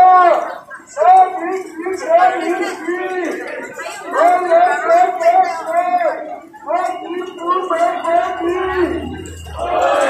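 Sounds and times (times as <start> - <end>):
crowd chanting in unison: 8.3 - 10.0.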